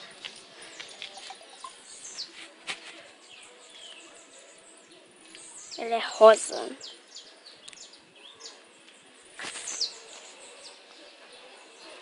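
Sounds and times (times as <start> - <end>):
birds chirping: 0.0 - 2.4, 3.1 - 12.0.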